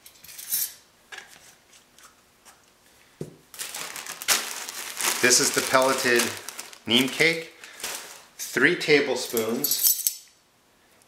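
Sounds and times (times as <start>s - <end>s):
plastic bag crinkling: 3.5s - 8.4s.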